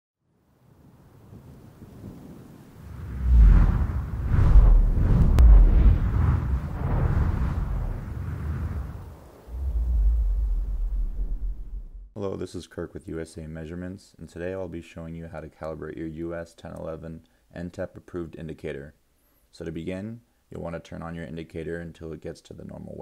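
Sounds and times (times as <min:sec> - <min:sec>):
deep rumbling swell: 0:02.8 - 0:12.1
whooshes: 0:02.8 - 0:12.1.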